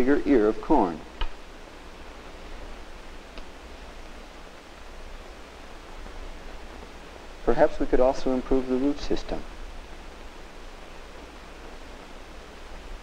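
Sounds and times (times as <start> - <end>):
film soundtrack hiss and hum: 0.0 - 13.0.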